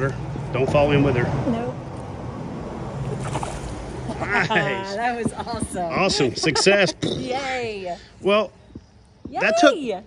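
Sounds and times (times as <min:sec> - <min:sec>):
steady water rushing: 0:02.3 - 0:05.0
creek water sloshing: 0:02.6 - 0:04.4
fish splash: 0:03.0 - 0:04.1.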